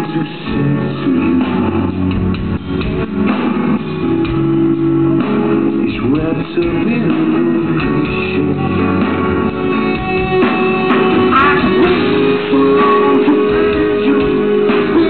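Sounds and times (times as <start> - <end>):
electric guitar: 0.0 - 15.0
live rock band playing: 0.0 - 15.0.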